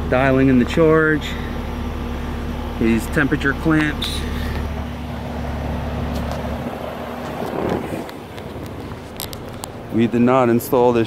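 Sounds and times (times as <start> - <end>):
heat pump humming: 0.0 - 11.0.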